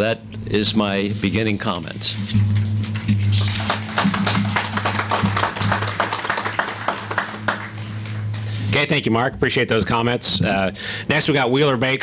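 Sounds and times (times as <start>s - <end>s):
steady low hum: 0.0s - 12.0s
audience applauding: 3.4s - 8.4s.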